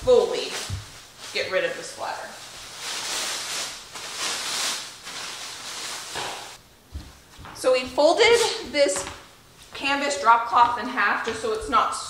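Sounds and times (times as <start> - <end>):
plastic sheeting rustling: 0.0 - 6.6, 8.2 - 8.7.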